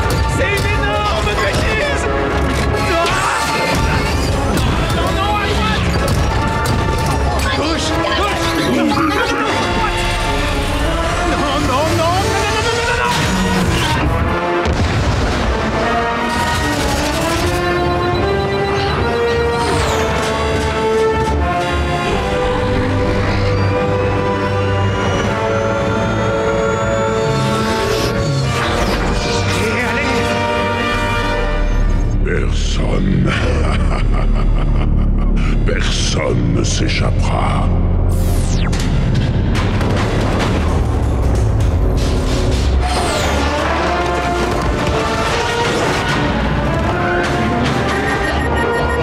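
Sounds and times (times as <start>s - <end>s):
dramatic film score: 0.0s - 49.0s.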